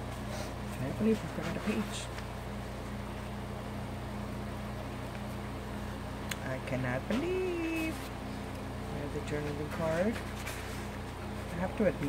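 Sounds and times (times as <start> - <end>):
low machine hum: 0.0 - 12.0
paper pages rustling: 9.4 - 11.6.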